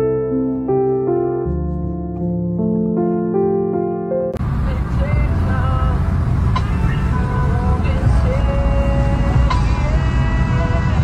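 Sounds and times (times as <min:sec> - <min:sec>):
car road noise rumble: 0:04.4 - 0:11.0
song with vocals: 0:04.6 - 0:11.0.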